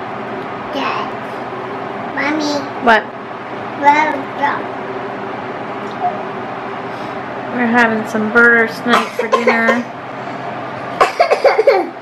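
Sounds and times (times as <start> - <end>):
woman coughing: 8.9 - 9.9, 11.0 - 12.0.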